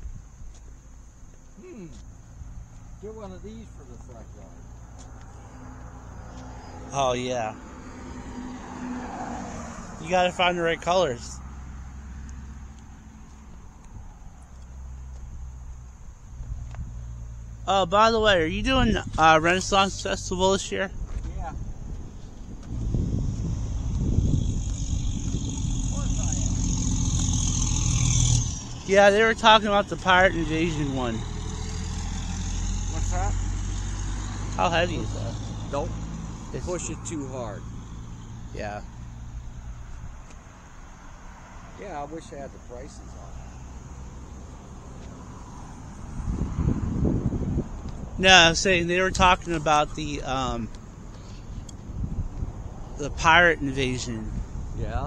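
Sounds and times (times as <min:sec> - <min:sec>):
car passing: 0:01.6 - 0:55.0
vehicle engine running: 0:21.5 - 0:38.3.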